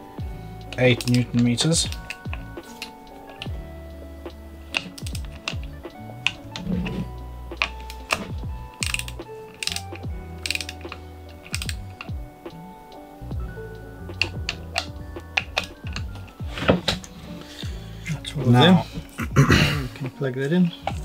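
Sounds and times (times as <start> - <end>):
background music: 0.0 - 21.0
ratchet wrench clicking: 4.7 - 6.7, 7.6 - 12.2.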